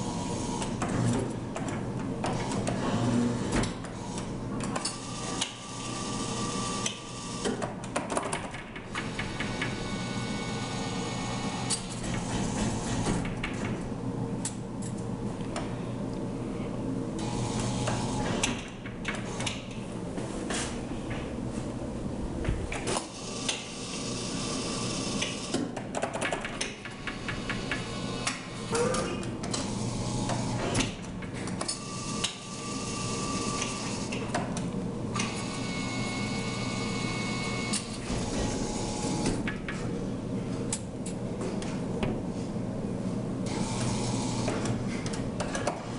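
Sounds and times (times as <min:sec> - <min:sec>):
machine hum: 0:00.0 - 0:45.9.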